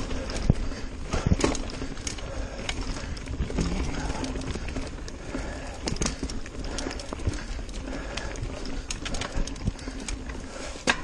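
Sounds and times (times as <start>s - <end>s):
tyres rumbling on dirt: 0.0s - 10.4s
mountain bike rattling: 0.0s - 11.0s.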